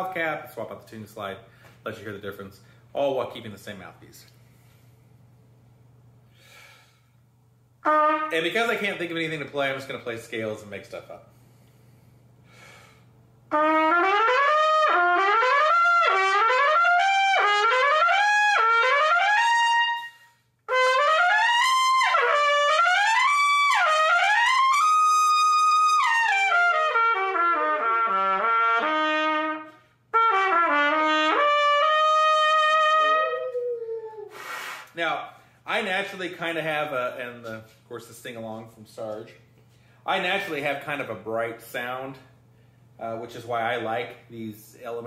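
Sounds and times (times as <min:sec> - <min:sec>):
trumpet playing scale runs: 0:13.5 - 0:33.5.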